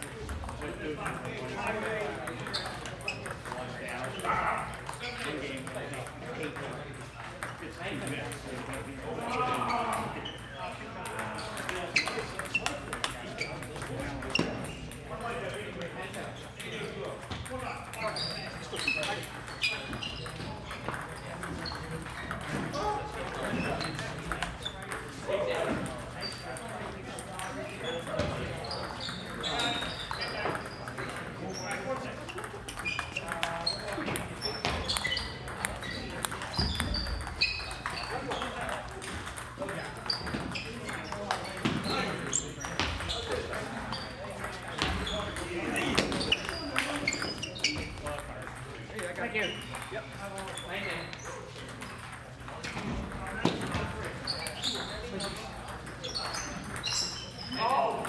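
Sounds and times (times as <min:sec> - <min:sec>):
chatter of voices: 0:00.0 - 0:58.0
ping-pong balls clicking: 0:00.0 - 0:58.0.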